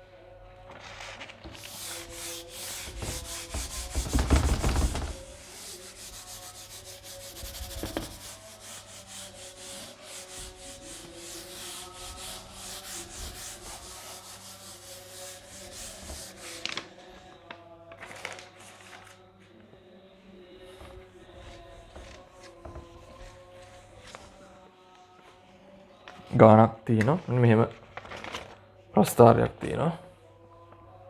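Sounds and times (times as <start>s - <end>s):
eraser rubbing whiteboard: 1.5s - 16.8s, 20.8s - 24.4s.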